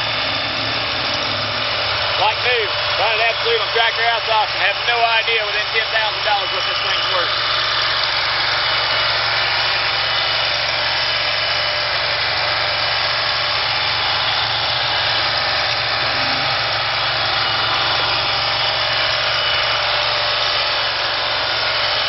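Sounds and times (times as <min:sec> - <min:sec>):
gasoline engine running steadily: 0:00.0 - 0:22.0.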